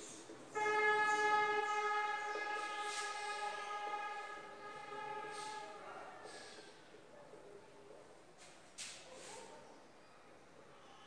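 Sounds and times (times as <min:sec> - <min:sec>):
long horn blast: 0:00.5 - 0:06.8.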